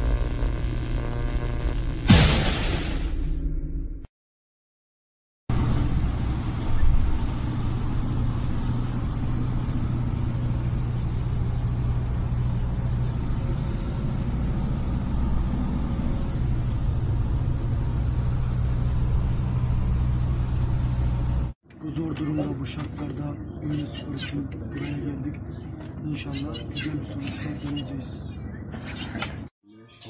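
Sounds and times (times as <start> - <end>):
engine and road rumble: 5.5 - 29.5.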